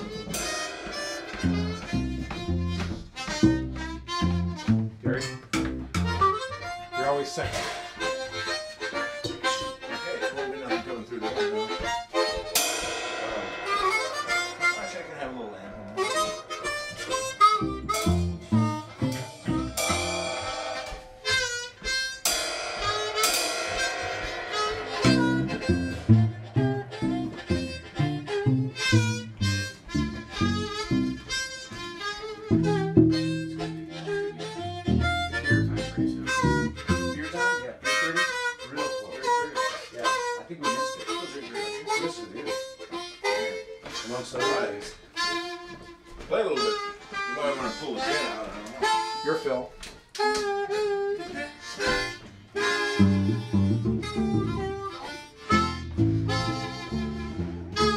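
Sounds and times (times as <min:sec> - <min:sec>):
blues harmonicas playing: 0:00.0 - 0:57.9
low harmonica chords: 0:00.0 - 0:57.9.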